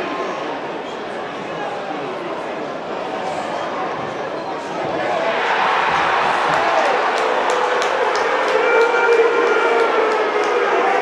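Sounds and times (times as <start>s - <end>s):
crowd roaring: 5.0s - 11.0s
sharp clapping: 6.0s - 10.8s.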